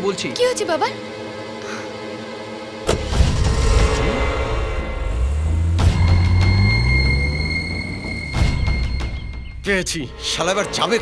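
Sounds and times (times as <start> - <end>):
vehicle engine revving: 3.0 - 9.5.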